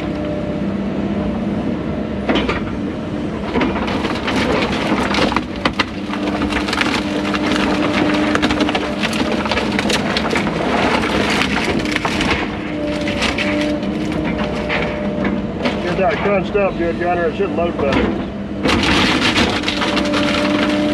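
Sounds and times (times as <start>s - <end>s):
excavator engine running: 0.0s - 20.9s
hydraulic whine: 0.0s - 20.9s
wood cracking and splintering: 3.4s - 16.7s, 17.8s - 20.9s.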